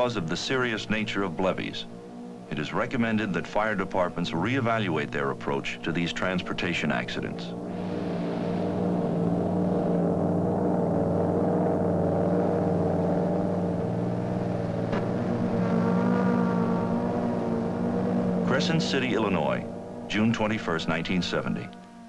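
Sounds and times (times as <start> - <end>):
aircraft engine droning: 0.0 - 22.0
higher tones: 0.0 - 22.0.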